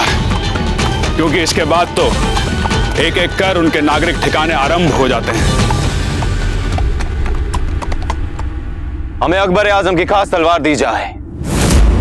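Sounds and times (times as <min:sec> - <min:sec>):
hooves clip-clopping: 0:00.0 - 0:08.7
low rumble of troop moving: 0:00.2 - 0:10.1.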